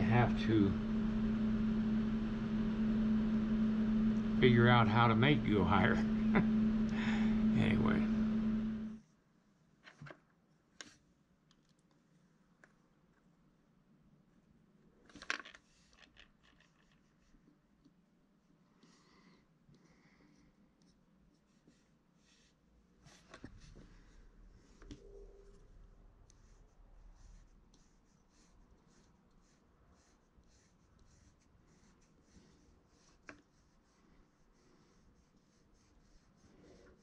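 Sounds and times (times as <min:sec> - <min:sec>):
sculpting tool scraping clay: 0:26.2 - 0:37.0.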